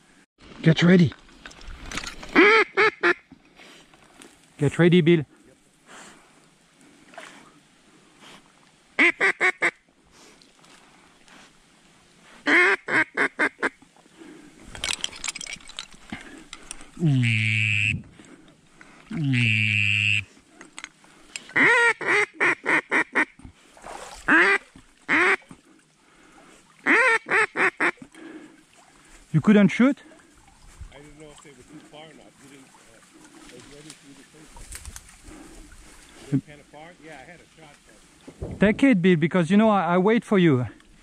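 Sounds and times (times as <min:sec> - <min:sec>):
duck drawn-out calls: 0:02.4 - 0:03.2, 0:09.0 - 0:09.8, 0:12.4 - 0:13.8, 0:17.0 - 0:18.0, 0:19.2 - 0:20.3, 0:21.6 - 0:23.4, 0:24.3 - 0:25.4, 0:26.8 - 0:28.0
duck quacking: 0:02.4 - 0:03.2, 0:09.0 - 0:09.8, 0:12.5 - 0:13.8, 0:17.0 - 0:18.0, 0:19.2 - 0:20.3, 0:21.6 - 0:23.3, 0:24.3 - 0:25.5, 0:26.8 - 0:28.0.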